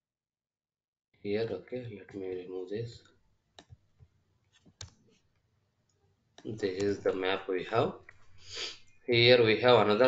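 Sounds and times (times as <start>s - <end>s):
mouse and keyboard clicks: 4.6s - 5.2s.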